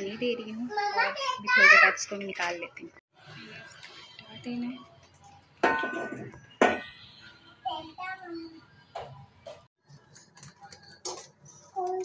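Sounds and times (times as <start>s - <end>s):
metallic clanks of cookware: 5.6s - 6.9s.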